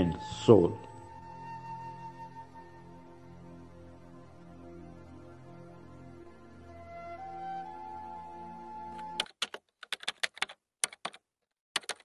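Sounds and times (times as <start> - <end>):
soft background music: 0.0 - 9.2
computer keyboard typing: 9.0 - 11.2, 11.8 - 12.0.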